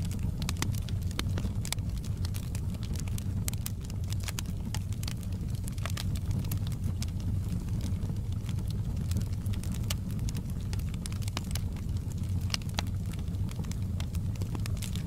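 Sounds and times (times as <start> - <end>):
burning logs crackling and popping: 0.0 - 15.0
fire flames rumbling: 0.0 - 15.0.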